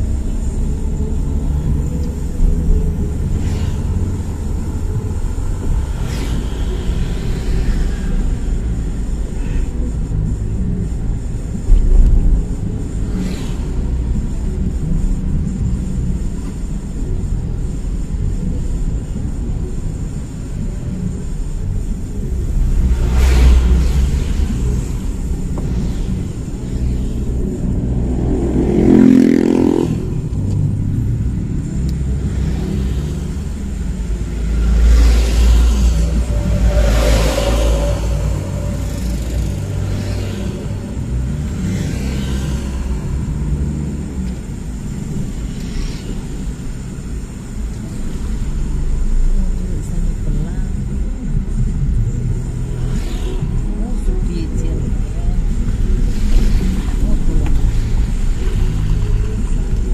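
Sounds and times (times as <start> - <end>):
car road and engine rumble: 0.0 - 59.9
vehicles passing: 0.0 - 59.9.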